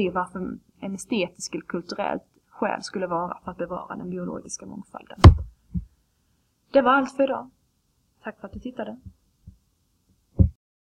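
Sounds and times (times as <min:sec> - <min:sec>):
dull low thump: 0:05.2 - 0:05.9, 0:10.4 - 0:10.6
faint low thud: 0:05.2 - 0:05.9, 0:10.4 - 0:10.6.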